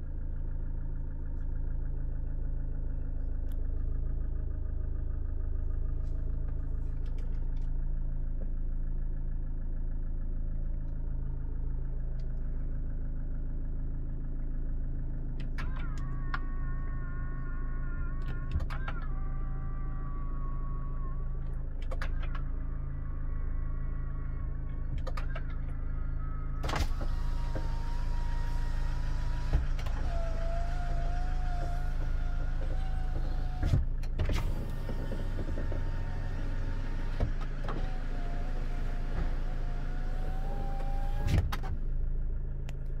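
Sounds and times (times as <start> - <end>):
car engine idling: 0.0 - 43.0
electric window motor whining: 26.5 - 41.9.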